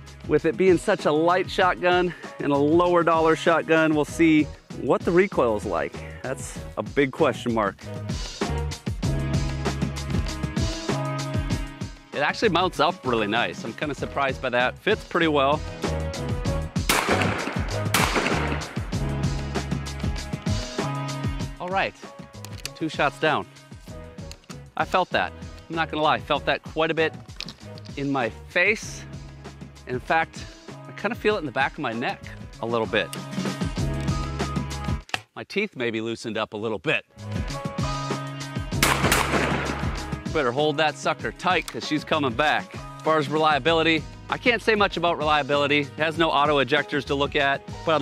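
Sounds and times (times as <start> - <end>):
background music: 0.0 - 35.5, 36.3 - 48.0
shotgun shots: 16.9 - 19.0, 38.8 - 40.1.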